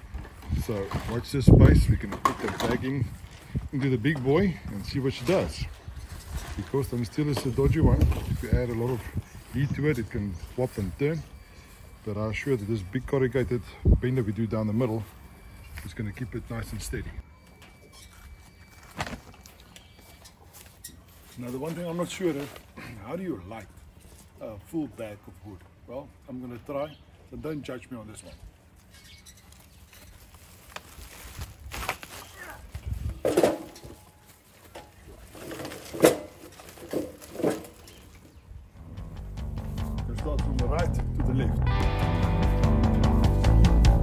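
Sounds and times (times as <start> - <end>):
sack of firewood rustling: 0.0 - 17.0, 18.0 - 24.5, 28.6 - 38.5
faint outdoor background: 0.0 - 44.0
rock guitar music: 38.8 - 44.0.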